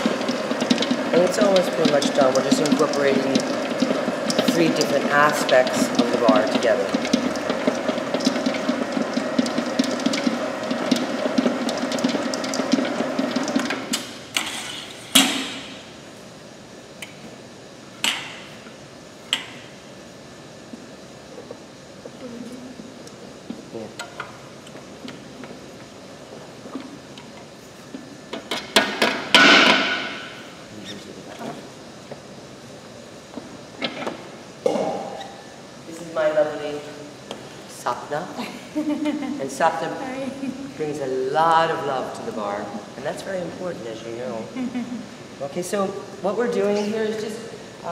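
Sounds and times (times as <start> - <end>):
mixer running with steady hum: 0.0 - 47.9.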